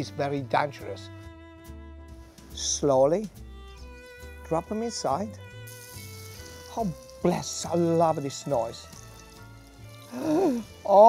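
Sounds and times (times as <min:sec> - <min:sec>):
oil sizzling while deep-frying: 0:03.8 - 0:11.0.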